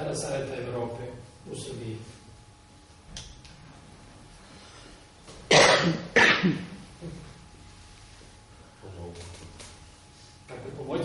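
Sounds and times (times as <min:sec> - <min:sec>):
person coughing: 0:05.5 - 0:07.3.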